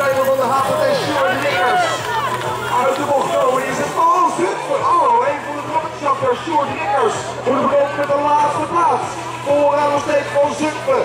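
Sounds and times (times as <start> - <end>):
announcer commentary over loudspeaker: 0.0 - 11.0.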